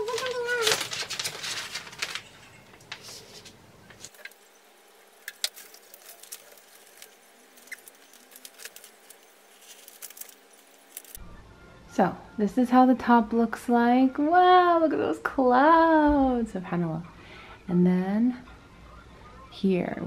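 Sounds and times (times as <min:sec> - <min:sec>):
plastic film rustling and crinkling: 0:00.0 - 0:11.2.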